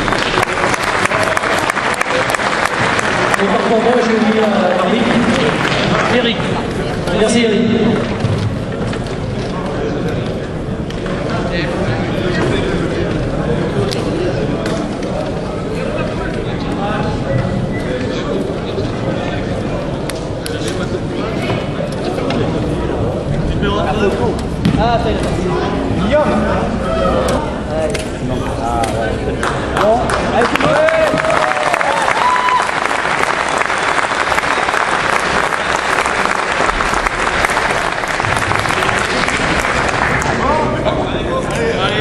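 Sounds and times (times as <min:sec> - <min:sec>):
indistinct chatter of many voices: 0:00.0 - 0:31.6, 0:33.3 - 0:42.0
people talking and calling out: 0:01.1 - 0:32.6.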